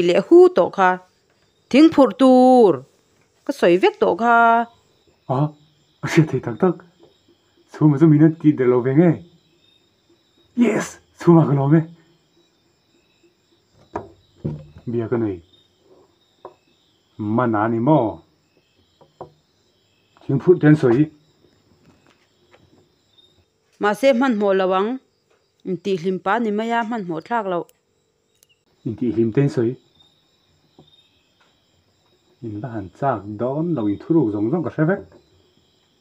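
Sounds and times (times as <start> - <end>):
crickets chirping: 0.0 - 36.0
man talking: 14.8 - 15.5, 20.2 - 21.2, 28.9 - 29.8, 32.4 - 35.1.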